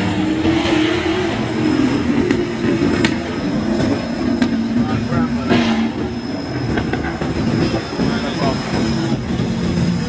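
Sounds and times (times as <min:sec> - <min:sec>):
cars driving past: 0:00.0 - 0:10.0
people's voices: 0:00.0 - 0:10.0.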